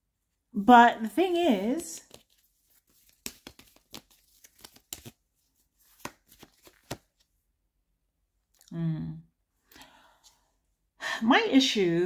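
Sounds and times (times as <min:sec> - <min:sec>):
cards being shuffled: 0:02.0 - 0:07.3.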